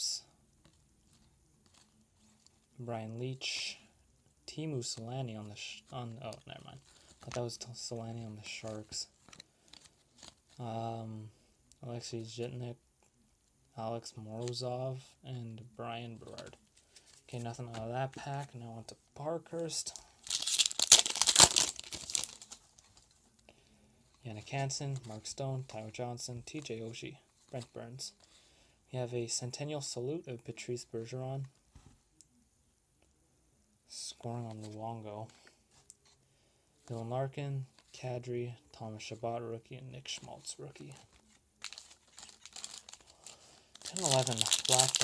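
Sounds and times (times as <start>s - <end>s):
card pack wrapper tearing: 20.2s - 22.8s, 41.6s - 45.0s.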